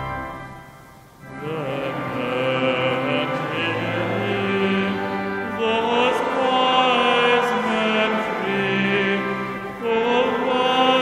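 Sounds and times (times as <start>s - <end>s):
congregation singing a carol: 0.0s - 11.0s
organ playing: 0.0s - 11.0s.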